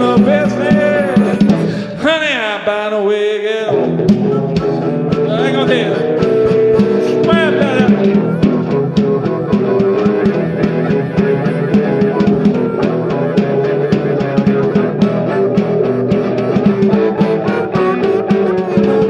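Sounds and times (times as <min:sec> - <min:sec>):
electric guitar: 0:00.0 - 0:02.0, 0:03.5 - 0:19.0
snare drum with brushes: 0:04.1 - 0:19.0.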